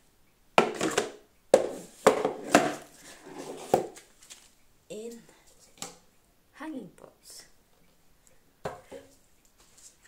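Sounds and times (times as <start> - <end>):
plastic pots knocking and clattering: 0.6 - 4.0, 8.6 - 9.2.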